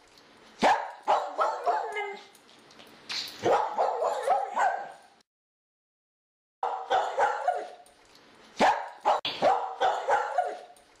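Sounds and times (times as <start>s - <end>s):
dog yipping barks: 0.6s - 2.3s, 3.4s - 5.0s, 6.6s - 7.8s, 8.6s - 10.8s.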